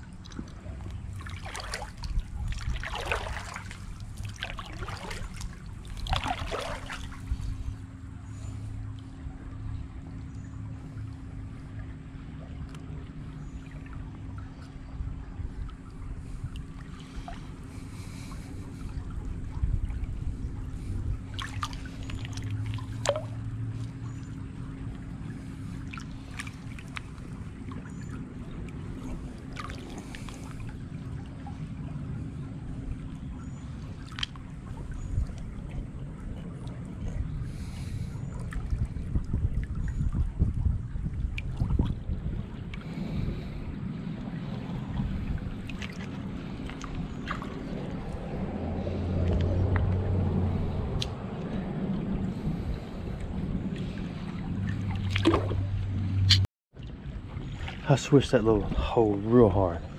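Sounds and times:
hand splashing through shallow water: 0:01.1 - 0:07.4, 0:21.3 - 0:23.4, 0:54.7 - 0:56.4.

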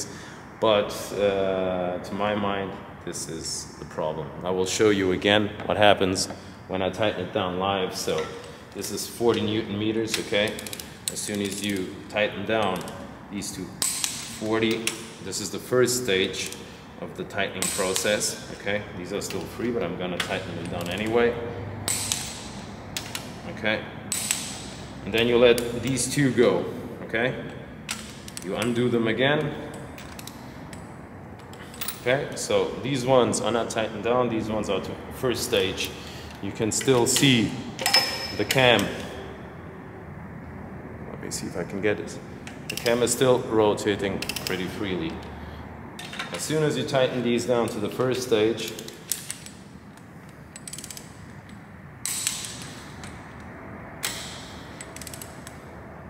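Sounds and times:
socket wrench clicks: 0:21.8 - 0:23.3, 0:24.1 - 0:26.0, 0:48.7 - 0:55.6.

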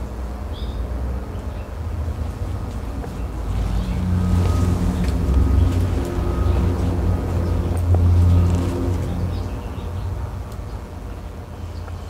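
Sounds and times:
motor passing by: 0:02.0 - 0:10.5.

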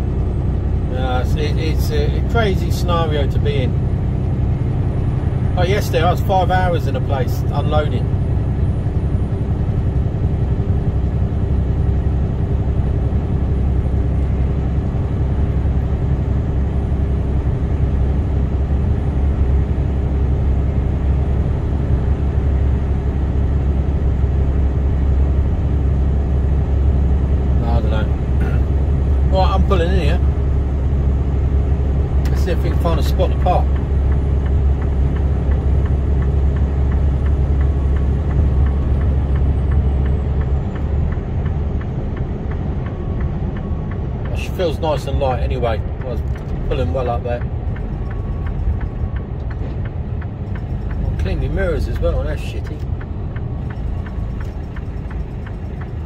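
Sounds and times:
lorry diesel engine drone: 0:00.0 - 0:56.0
person speaking: 0:44.3 - 0:47.5, 0:51.1 - 0:52.9.

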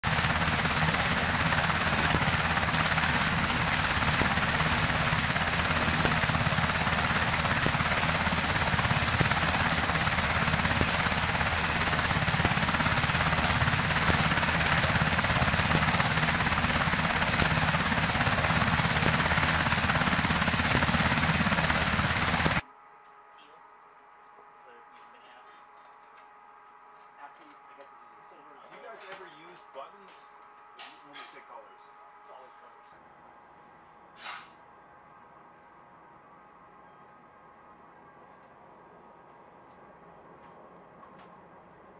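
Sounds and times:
helicopter rotor and engines: 0:00.0 - 0:22.6.

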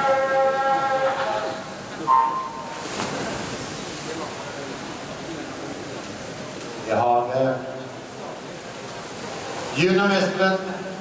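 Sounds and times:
water splashing: 0:01.8 - 0:06.8.

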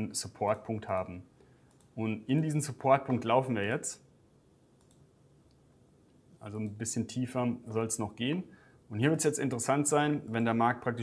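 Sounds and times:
computer mouse clicks: 0:01.7 - 0:02.5, 0:04.8 - 0:05.6.

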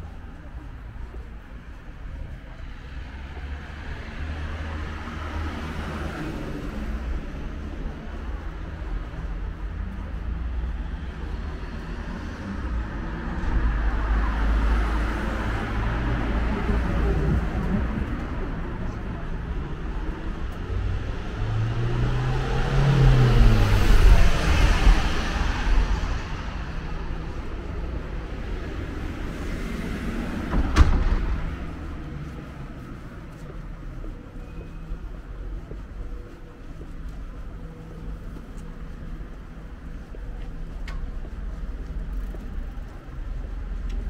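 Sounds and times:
city street rumble: 0:00.0 - 0:44.0
vehicle engine hum: 0:00.0 - 0:44.0.

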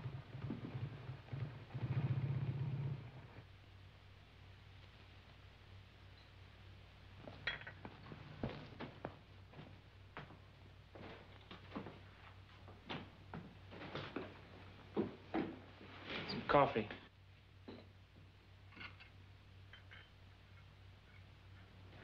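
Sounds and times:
boot footsteps on hard floor: 0:07.2 - 0:15.6
china cups and saucers clinking: 0:07.4 - 0:07.8, 0:19.7 - 0:20.2.

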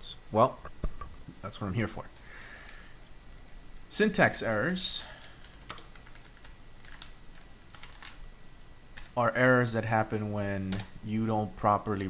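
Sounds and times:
keyboard typing: 0:05.2 - 0:08.2.

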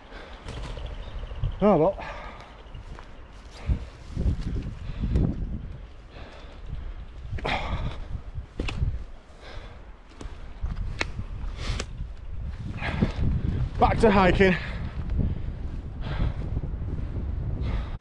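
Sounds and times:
wind rumbling on microphone: 0:00.0 - 0:18.0
footsteps crunching on branches: 0:02.3 - 0:04.8.

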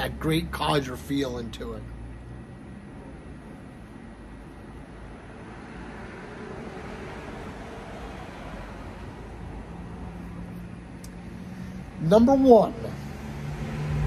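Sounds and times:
low steady hum: 0:00.0 - 0:13.5
distant road traffic: 0:00.0 - 0:14.0.

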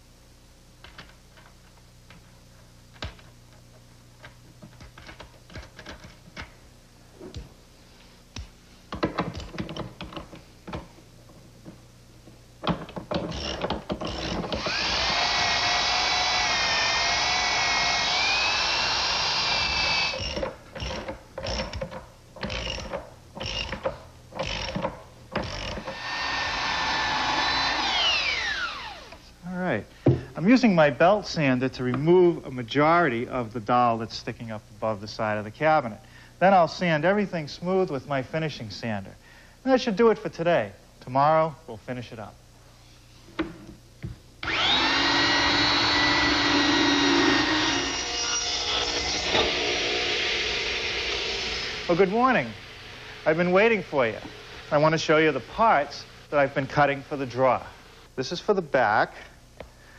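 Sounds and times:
belt sander whining: 0:13.1 - 0:21.8, 0:22.4 - 0:29.3, 0:44.4 - 0:58.0.

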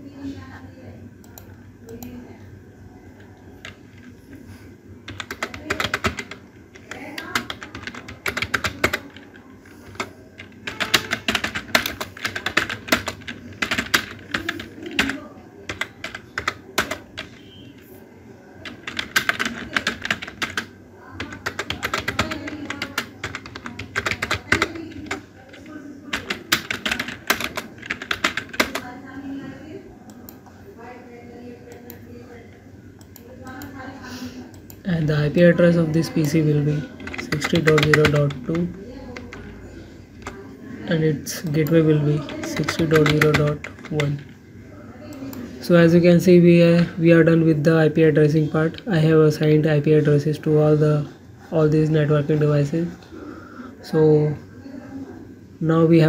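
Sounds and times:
typing on computer keyboard: 0:03.2 - 0:04.1, 0:05.1 - 0:17.9, 0:18.6 - 0:29.0, 0:36.0 - 0:39.5, 0:40.2 - 0:40.4, 0:41.5 - 0:44.4.

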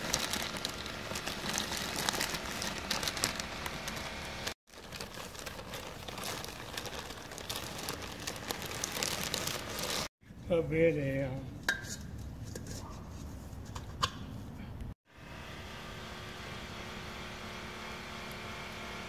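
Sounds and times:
dry herb rustling into metal pot: 0:00.0 - 0:10.1
plastic bag crinkling: 0:00.0 - 0:10.1.

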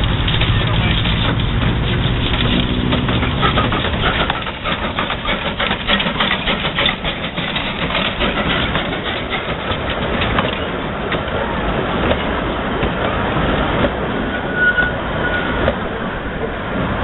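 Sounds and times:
steam train passing: 0:00.0 - 0:17.0
wheels clattering: 0:00.0 - 0:17.0.

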